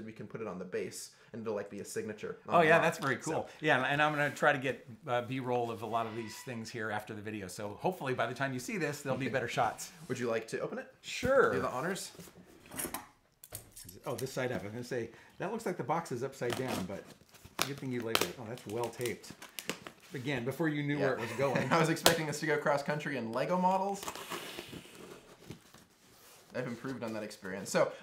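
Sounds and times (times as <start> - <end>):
packing tape ripping from cardboard: 23.9 - 25.8.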